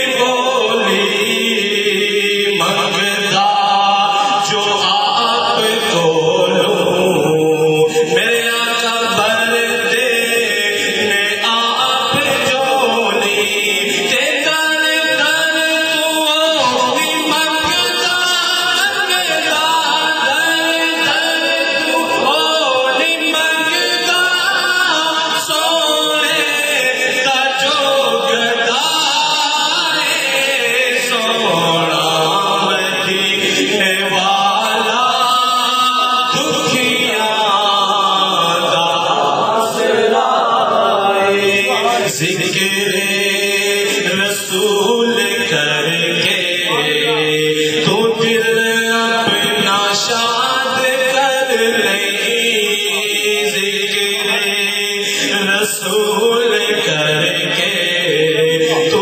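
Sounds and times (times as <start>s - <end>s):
voices chanting devotional poem: 0.0s - 59.0s.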